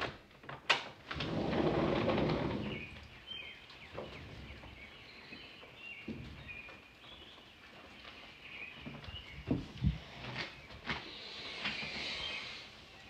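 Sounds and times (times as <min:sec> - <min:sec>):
birds chirping: 0:01.6 - 0:13.0.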